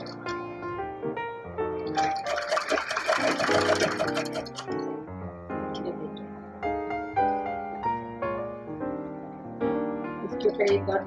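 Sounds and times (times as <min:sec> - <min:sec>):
background music: 0:00.0 - 0:11.0
sewing machine stitching: 0:02.0 - 0:04.8.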